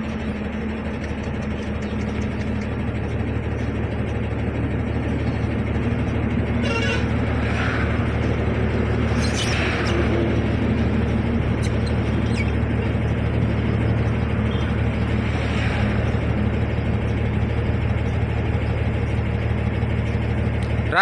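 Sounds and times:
road traffic hum: 0.0s - 21.0s.

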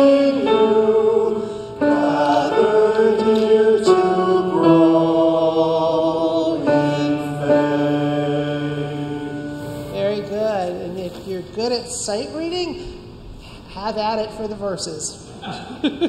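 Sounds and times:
voices singing a hymn: 0.0s - 10.8s.

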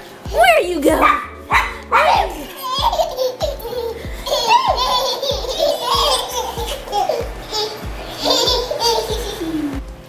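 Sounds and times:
baby laughing and giggling: 0.4s - 9.8s.

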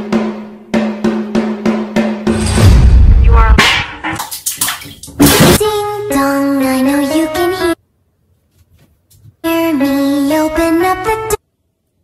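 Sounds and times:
deep boom: 2.3s - 4.0s
water splashing in a bathtub: 3.6s - 5.6s.

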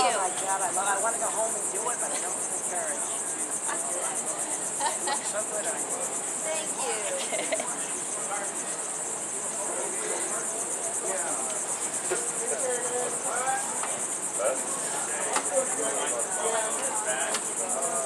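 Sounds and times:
high-pitched insect chorus: 0.0s - 18.0s.

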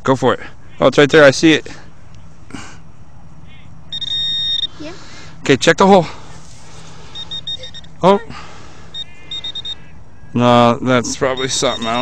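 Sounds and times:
pinpointer probe short high beeps: 3.9s - 4.8s, 7.1s - 8.0s, 8.9s - 9.8s, 11.3s - 12.0s.

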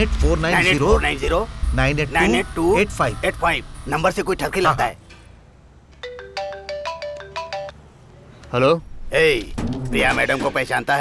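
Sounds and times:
mobile phone ringtone: 6.0s - 7.8s.

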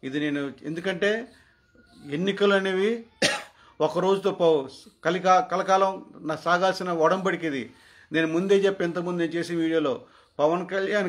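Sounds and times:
man speaking: 0.0s - 3.2s, 3.8s - 11.0s
man coughing: 3.2s - 3.6s.

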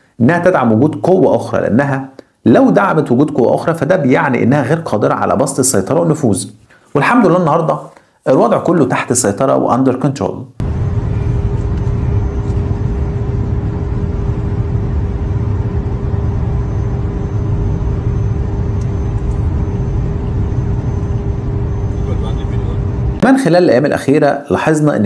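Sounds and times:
road and wind noise: 10.6s - 23.2s
steady hum: 10.6s - 24.1s.

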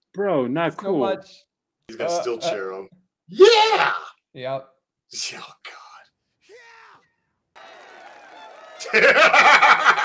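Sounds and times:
men exclaiming oh: 3.3s - 4.1s, 6.5s - 7.1s
burst of laughter: 8.8s - 10.0s.

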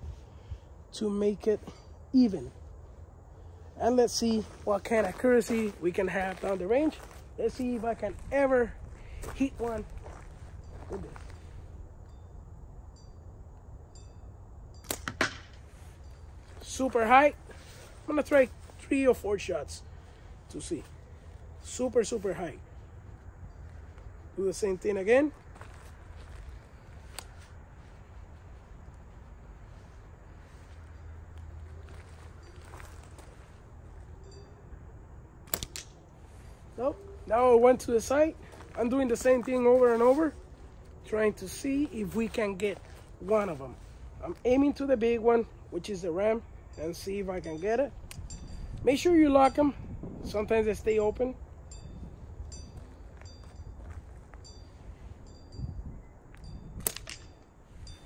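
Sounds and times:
slingshot snapping: 14.8s - 15.6s, 35.4s - 36.0s, 56.8s - 57.4s
faint metallic chime pings: 34.2s - 34.8s.

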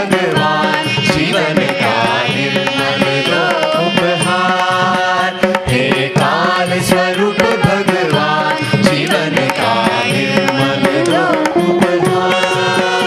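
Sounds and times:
hand drums: 0.0s - 13.0s
veena: 0.0s - 13.0s
voices singing a gliding melody: 0.0s - 13.0s.

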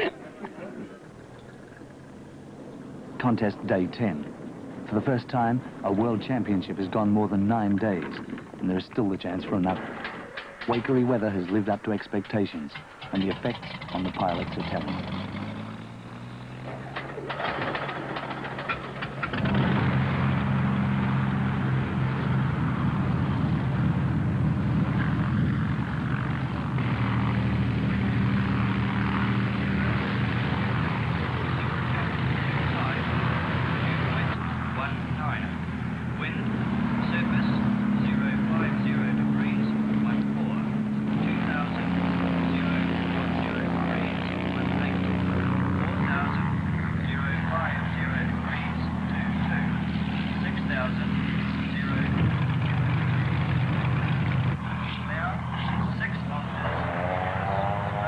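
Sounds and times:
light aircraft engine and propeller: 0.0s - 58.0s.

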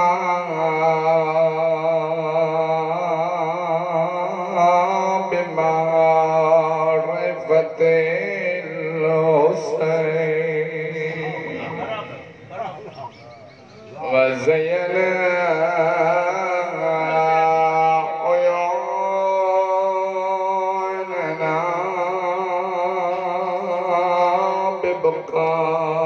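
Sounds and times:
man chanting into microphone: 0.0s - 12.5s, 14.0s - 26.0s.

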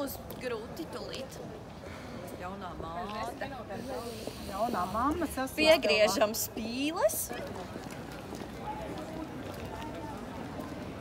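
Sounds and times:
people talking: 2.4s - 7.9s.

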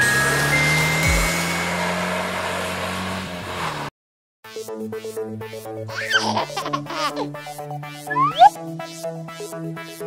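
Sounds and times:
music: 0.0s - 1.8s, 4.5s - 10.0s
rushing engine-like noise: 0.0s - 3.9s.

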